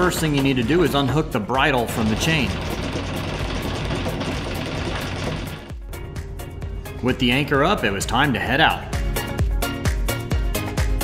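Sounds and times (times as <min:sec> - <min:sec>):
background music: 0:00.0 - 0:11.0
anchor chain rattling: 0:01.8 - 0:05.8.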